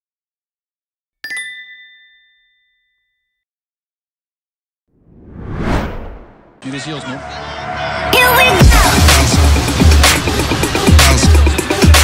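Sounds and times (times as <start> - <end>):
bright bell-like chime: 1.3 - 3.4.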